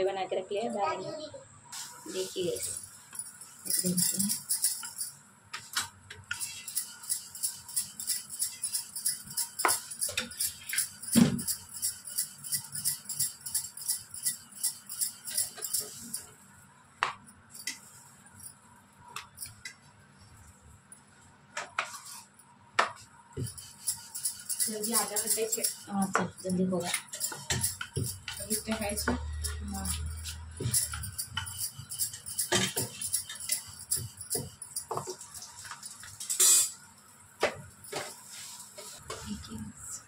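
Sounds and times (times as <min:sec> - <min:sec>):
glass bangles jingling: 0:02.4 - 0:05.2, 0:06.4 - 0:16.3, 0:23.5 - 0:36.4
rolling pin rolling dough on stone: 0:05.6 - 0:16.2, 0:22.8 - 0:35.9.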